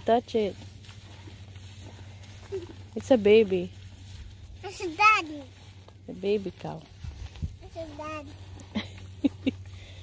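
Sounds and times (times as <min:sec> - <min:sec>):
calf chewing grass: 0:00.0 - 0:10.0.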